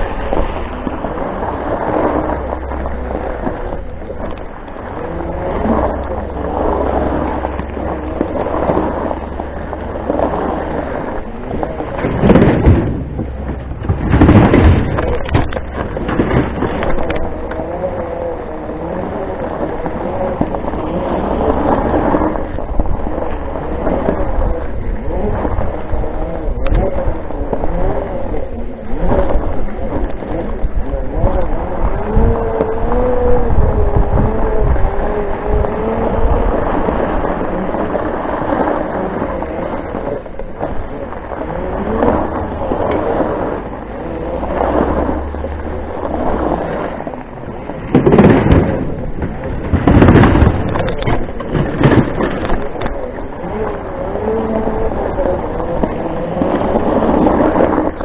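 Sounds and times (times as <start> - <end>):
electric motors whining: 0.0 - 58.0
wind rumble on microphone: 0.0 - 58.0.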